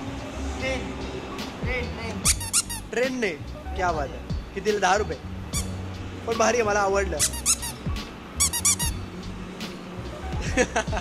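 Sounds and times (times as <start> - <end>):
rubber squeeze toy squeaking: 2.2 - 2.9, 5.5 - 5.8, 7.2 - 9.0.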